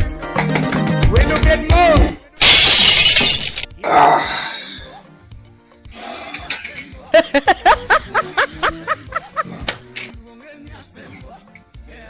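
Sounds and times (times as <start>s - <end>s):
glass shattering crash: 2.4s - 3.7s.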